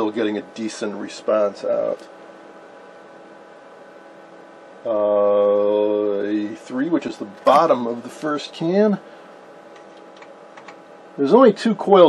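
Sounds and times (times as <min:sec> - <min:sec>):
electronics hiss and hum: 0:00.0 - 0:12.0
man holding long uhh: 0:04.9 - 0:06.2.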